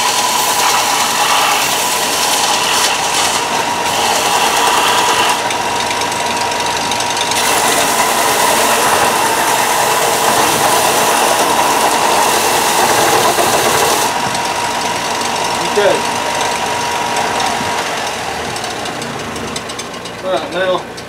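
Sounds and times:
belt grinding hiss: 0.0 - 5.9, 7.4 - 14.7
belt sander whining: 0.0 - 21.0.

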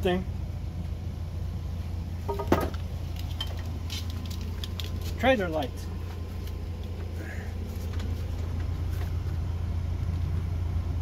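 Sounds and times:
steady low hum: 0.0 - 11.0
trailer hitch hardware clicks and rattles: 2.2 - 5.3.

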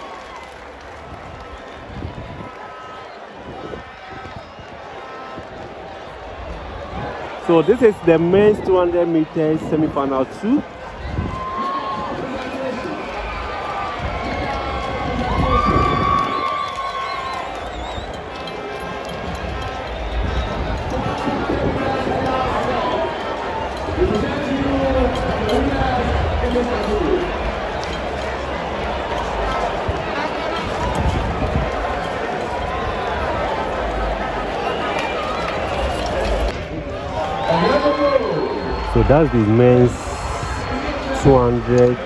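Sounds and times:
crowd hubbub: 0.0 - 42.0.

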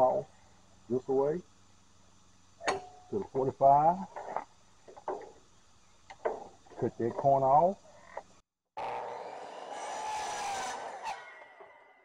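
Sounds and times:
miter saw cutting wood: 8.8 - 12.0.

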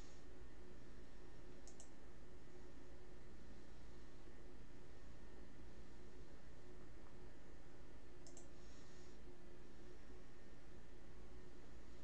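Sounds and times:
steady low hum: 0.0 - 12.0
sharp clicks: 1.6 - 2.0, 8.2 - 8.5.

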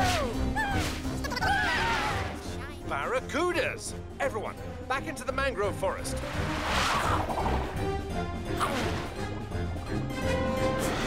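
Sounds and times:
action underscore music: 0.0 - 11.0
whooshing sound effects: 6.2 - 7.8.

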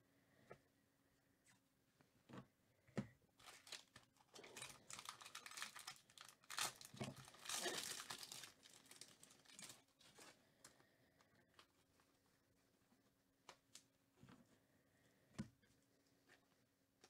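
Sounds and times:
foil wrapper crinkling: 3.4 - 10.4.

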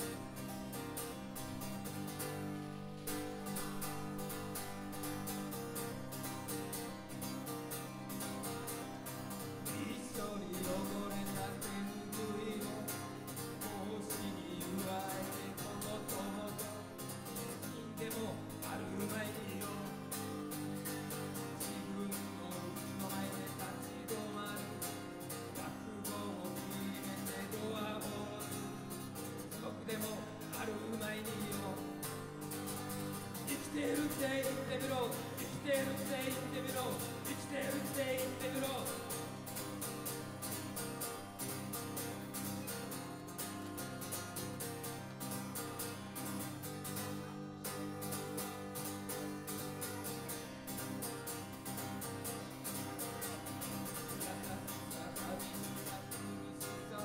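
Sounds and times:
acoustic guitar: 0.0 - 57.0
man singing: 9.2 - 40.6, 53.2 - 57.0.

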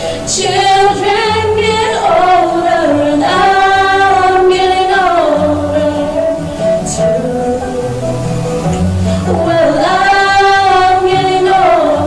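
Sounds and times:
two women singing in harmony: 0.0 - 12.0.

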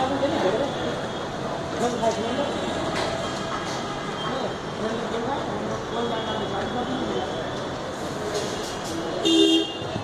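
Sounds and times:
background traffic noise: 0.0 - 10.0
vehicle horn honk: 9.2 - 9.8.

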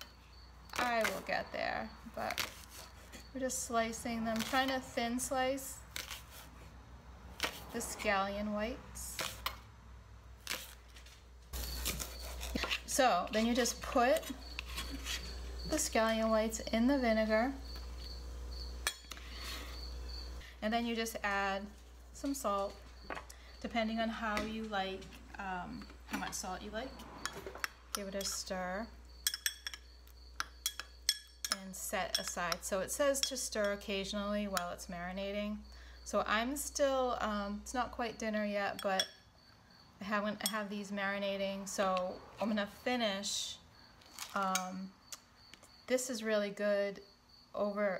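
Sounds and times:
metal spoon clinking glass bowl: 27.2 - 28.5, 29.2 - 32.6, 33.2 - 33.9.

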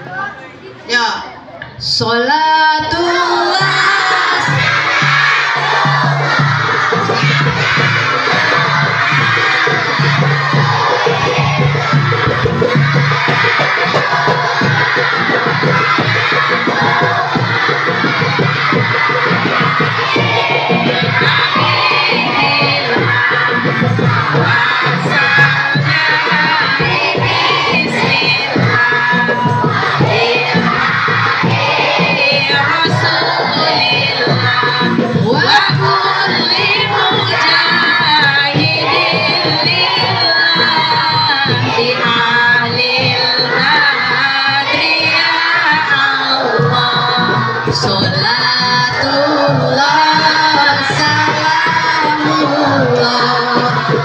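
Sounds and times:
woman singing over microphone: 0.9 - 4.8, 19.4 - 54.0
children singing together: 2.9 - 54.0
hand drums: 3.1 - 54.0
large drum beating: 3.1 - 54.0.

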